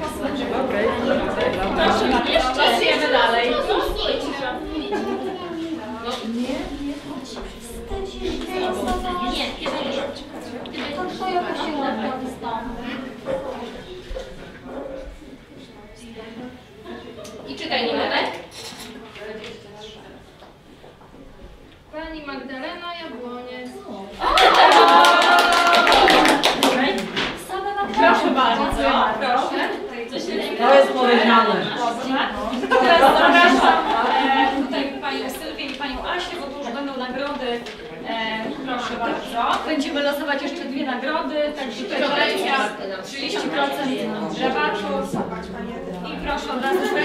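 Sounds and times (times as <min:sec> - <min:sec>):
women's voices: 0:00.0 - 0:14.2, 0:21.9 - 0:47.0
women talking: 0:21.9 - 0:47.0
audience applauding: 0:24.2 - 0:27.1.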